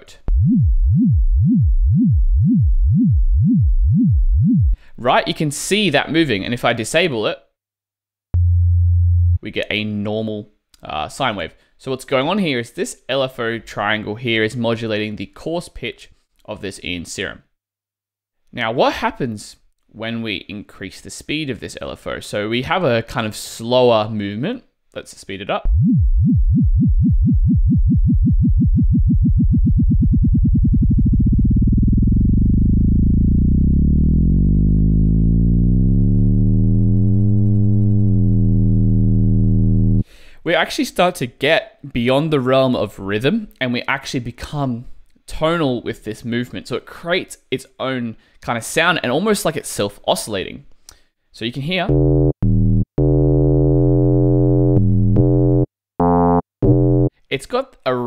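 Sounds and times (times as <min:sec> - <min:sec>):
warbling sine synth tone: 0:00.3 - 0:04.8, 0:08.4 - 0:09.4, 0:25.7 - 0:40.0, 0:51.9 - 0:55.7.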